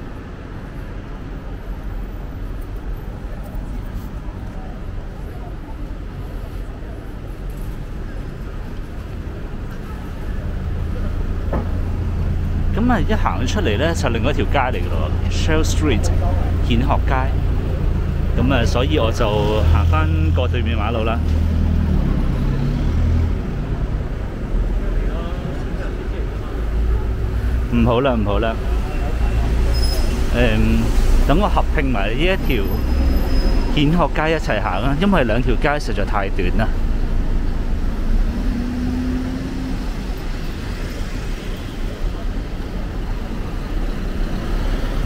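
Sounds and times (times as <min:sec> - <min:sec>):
street traffic noise: 0:00.0 - 0:45.0
vehicle engine humming: 0:01.8 - 0:45.0.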